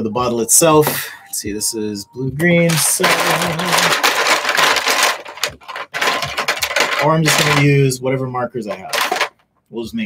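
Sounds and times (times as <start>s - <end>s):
plastic marker pens clattering: 2.7s - 7.8s, 8.7s - 9.4s.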